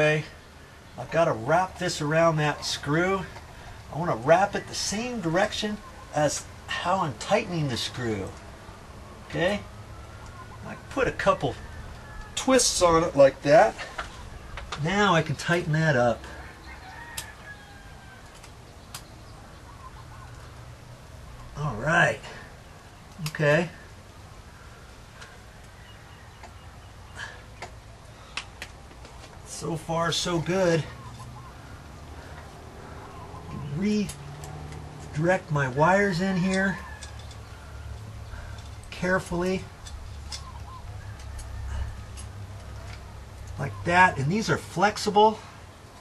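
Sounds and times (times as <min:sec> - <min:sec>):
low steady rumble: 0:00.0 - 0:46.0
clicks of wires being handled: 0:13.8 - 0:15.7, 0:18.2 - 0:19.1, 0:27.6 - 0:29.6, 0:33.5 - 0:43.6
bird call: 0:16.5 - 0:20.6, 0:40.2 - 0:42.2.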